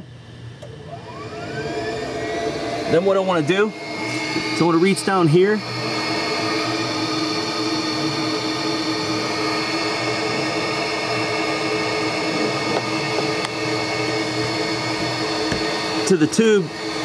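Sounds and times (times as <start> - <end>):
electric air pump whirring: 0.6 - 17.0.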